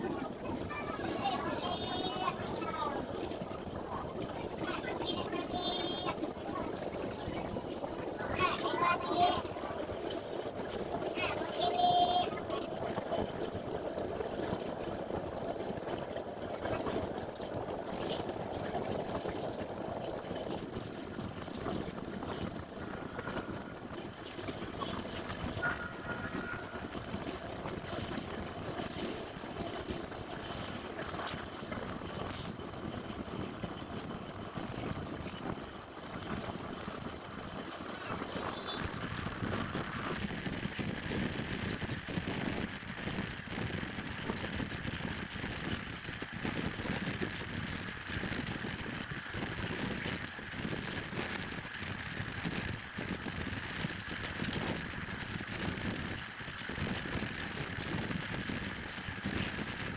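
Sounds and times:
train wheels rumbling on rails: 0:00.0 - 0:59.9.

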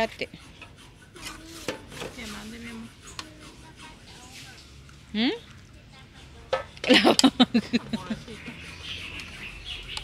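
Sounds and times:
spoon scraping beans in a pan: 0:00.0 - 0:10.0.

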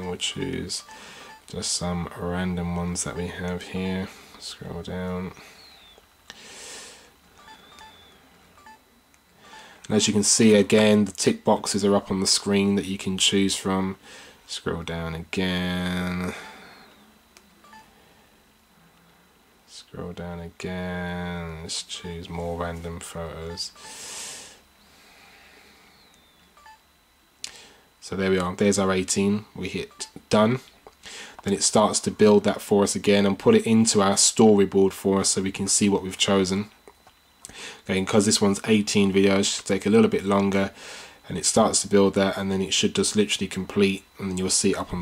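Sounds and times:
phone key beeps: 0:00.0 - 0:01.5, 0:07.4 - 0:08.8, 0:17.6 - 0:17.9, 0:23.5 - 0:24.0, 0:26.2 - 0:26.8, 0:29.9 - 0:30.2.

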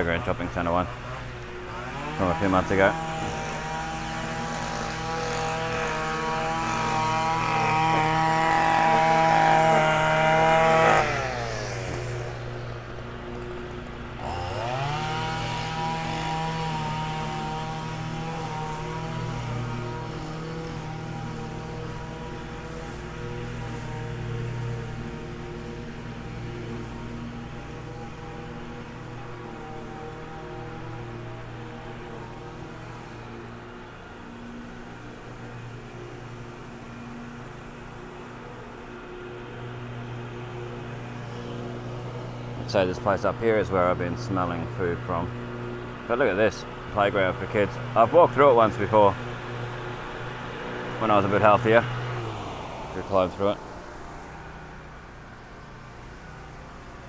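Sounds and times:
handheld power tool engine: 0:00.0 - 0:57.0.

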